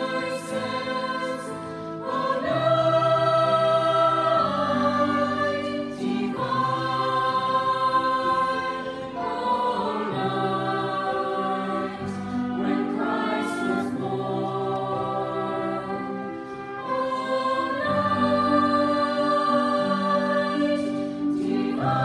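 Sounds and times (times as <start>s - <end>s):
choir singing a carol: 0.0s - 22.0s.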